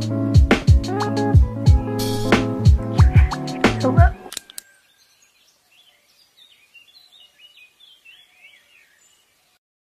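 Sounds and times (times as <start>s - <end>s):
lofi hip-hop beat: 0.0s - 4.3s.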